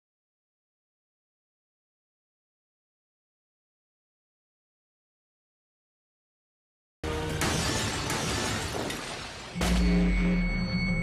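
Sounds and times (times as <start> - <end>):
dramatic music: 7.0 - 11.0
target shattering: 7.3 - 10.0.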